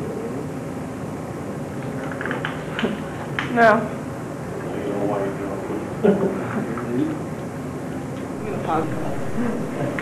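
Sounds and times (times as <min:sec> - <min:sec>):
steady background hiss and rumble: 0:00.0 - 0:10.0.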